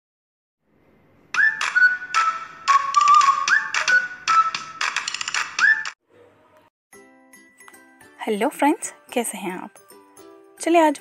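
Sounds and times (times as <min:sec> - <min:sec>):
whistle-like notes stepping down: 0:01.3 - 0:04.8, 0:05.6 - 0:06.0.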